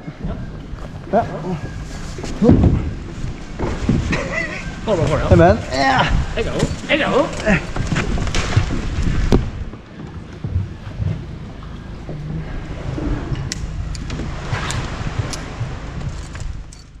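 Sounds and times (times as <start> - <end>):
low steady rumble: 0.0 - 17.0
rope knocks and clicks: 6.5 - 12.3, 13.5 - 17.0.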